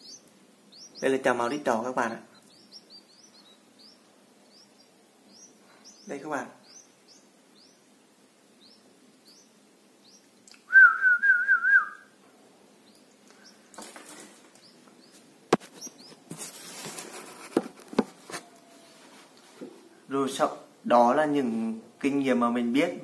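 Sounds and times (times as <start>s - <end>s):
nestlings cheeping: 0.0s - 12.2s, 12.8s - 16.4s
loud warbling whistle: 10.7s - 12.1s.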